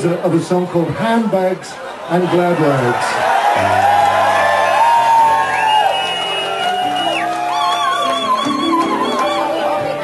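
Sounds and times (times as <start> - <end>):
audience whooping: 2.2 - 10.0
live band playing slow song: 3.6 - 10.0.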